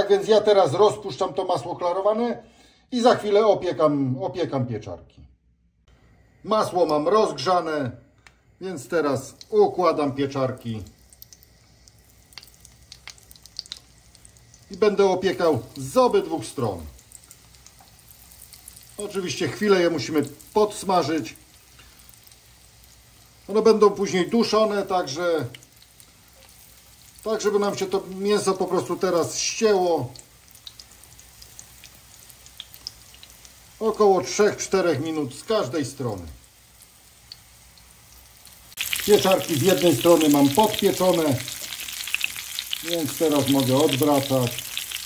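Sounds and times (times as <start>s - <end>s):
faint frying sizzle: 5.9s - 45.0s.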